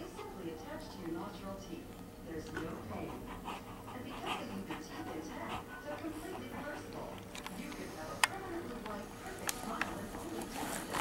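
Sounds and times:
dog panting: 2.4s - 8.6s.

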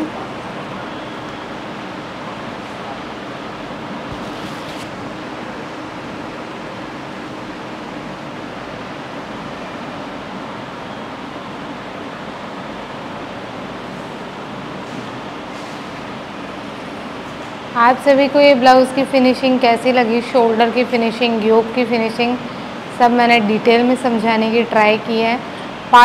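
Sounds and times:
fan whoosh with low hum: 0.0s - 26.0s.

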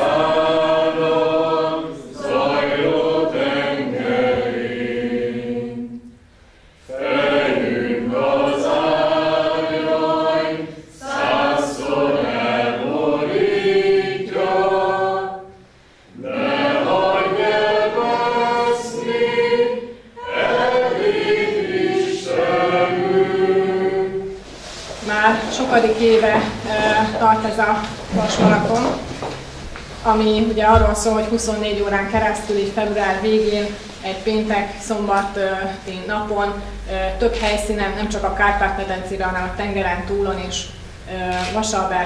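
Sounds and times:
group of voices singing slowly: 0.0s - 30.0s.

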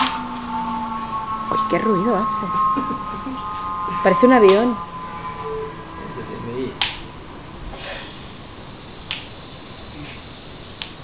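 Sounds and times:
spinning tops humming: 0.0s - 11.0s.

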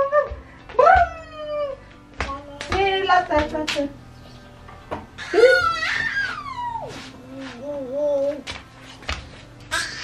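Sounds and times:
toddler babbling and squealing: 5.2s - 8.4s.

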